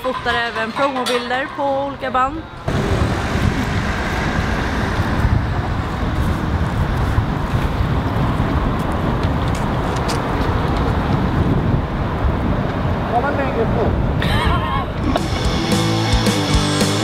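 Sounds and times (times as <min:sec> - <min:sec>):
wind buffeting microphone: 0:00.0 - 0:15.7
street and vehicle noise: 0:00.0 - 0:17.0.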